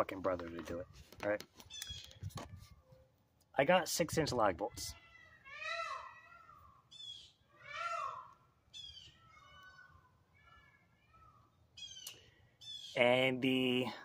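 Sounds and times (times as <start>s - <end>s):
animal calling: 4.9s - 13.0s.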